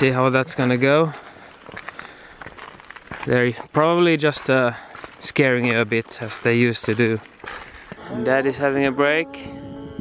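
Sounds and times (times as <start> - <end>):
footsteps on gravel: 0.0 - 9.1.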